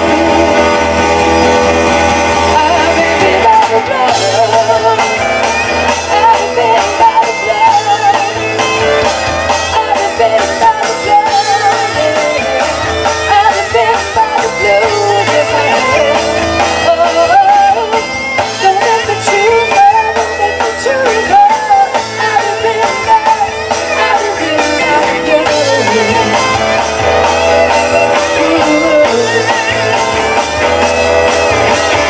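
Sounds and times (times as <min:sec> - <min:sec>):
blues-rock band playing: 0:00.0 - 0:32.0
drum kit: 0:00.0 - 0:32.0.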